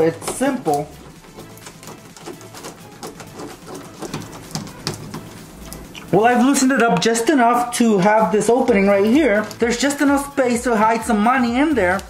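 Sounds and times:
screwdriver clicking and scraping: 0.3s - 6.1s, 9.0s - 9.7s.

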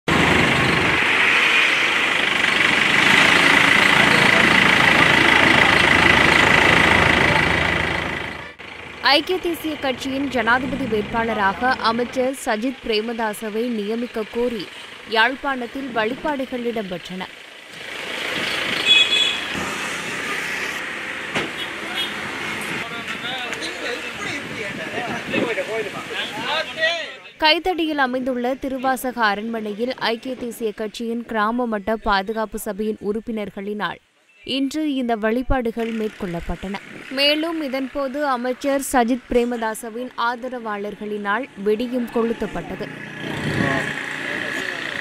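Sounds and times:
vehicle rushing by: 0.1s - 12.3s, 41.5s - 45.0s
truck engine idling: 2.0s - 17.7s.

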